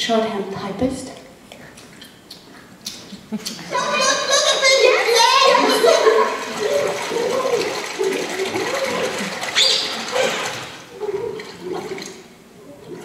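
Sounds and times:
water sloshing in plastic basin: 0:03.7 - 0:13.0
sharp water splash: 0:05.5 - 0:10.9.

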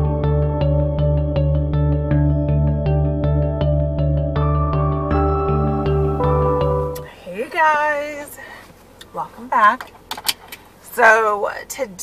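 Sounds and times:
woman's voice: 0:07.0 - 0:09.9, 0:10.8 - 0:12.0.

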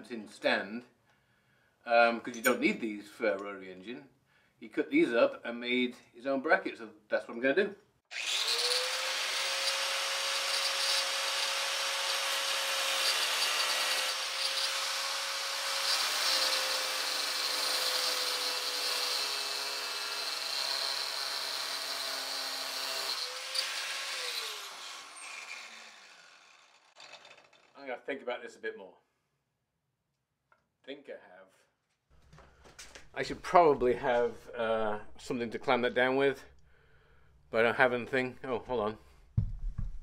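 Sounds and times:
angle grinder cutting steel: 0:08.1 - 0:27.8.

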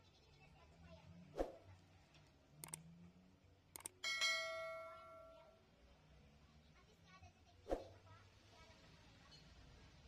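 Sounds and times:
mouse clicks: 0:02.6 - 0:02.8, 0:03.7 - 0:04.0
bell chime: 0:04.0 - 0:05.4.

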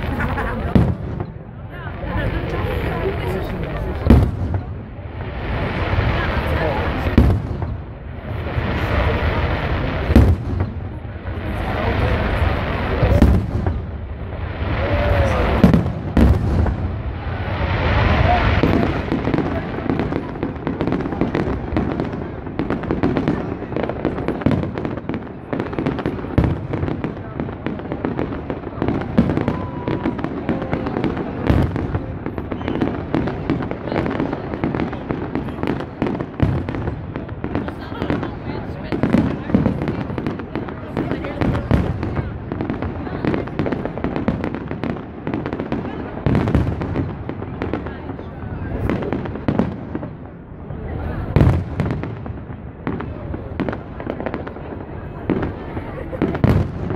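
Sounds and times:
crowd chatter: 0:00.0 - 0:56.9
fireworks bursting: 0:00.0 - 0:56.9.

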